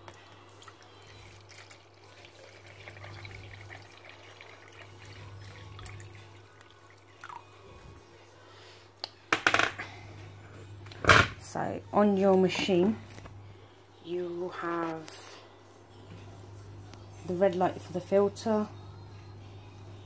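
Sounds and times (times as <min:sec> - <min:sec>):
water pouring into plastic tank: 0:01.2 - 0:07.4.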